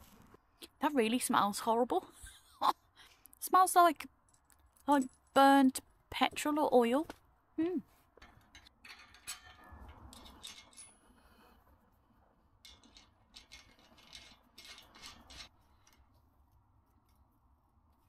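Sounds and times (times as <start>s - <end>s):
metallic clicks of bolt and nut: 8.2s - 11.1s, 12.6s - 16.1s.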